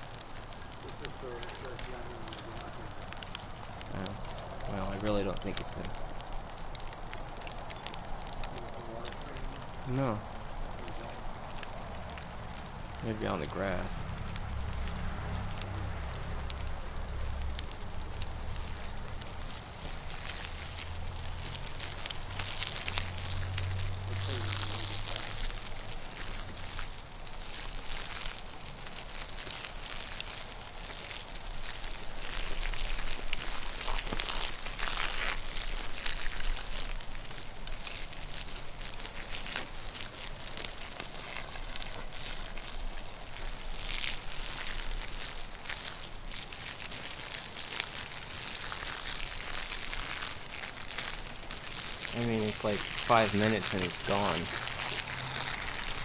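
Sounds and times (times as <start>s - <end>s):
wood fire crackling and popping: 0.0s - 56.0s.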